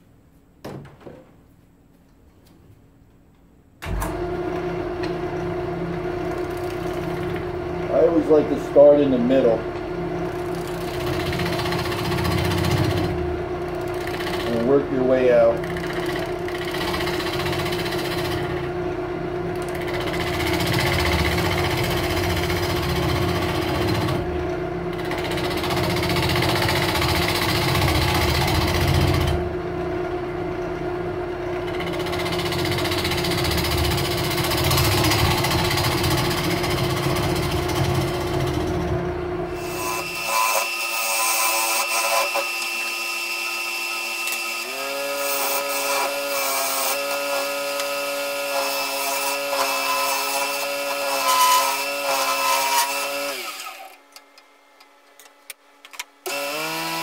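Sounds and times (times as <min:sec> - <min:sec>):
wood lathe motor hum: 0:04.1 - 0:18.8, 0:19.4 - 0:29.5, 0:31.4 - 0:54.0, 0:56.3 - 0:57.0
gouge cutting wood: 0:39.6 - 0:53.9.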